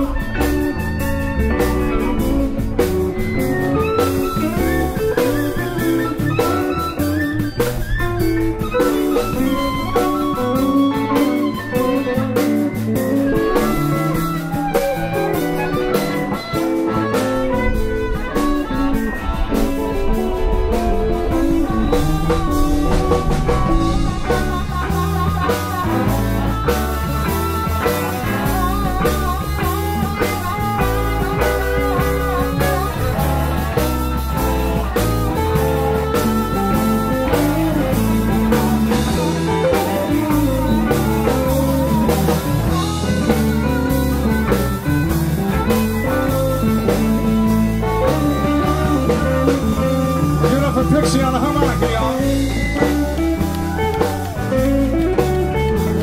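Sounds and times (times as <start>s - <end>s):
bass guitar: 0.0s - 56.0s
blues harmonica: 0.0s - 56.0s
drum kit: 0.0s - 56.0s
electric guitars: 0.0s - 56.0s.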